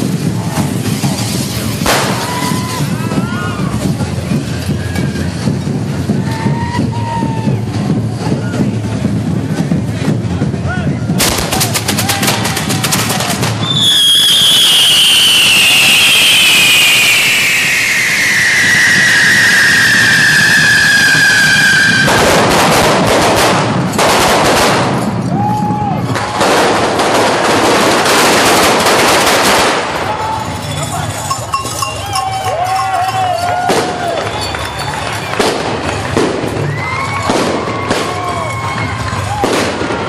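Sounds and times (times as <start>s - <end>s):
fireworks hissing sparks: 0.0s - 6.2s, 11.2s - 25.2s
firework crackling bangs: 0.0s - 40.0s
falling firework whistle: 13.5s - 23.1s, 30.6s - 40.0s.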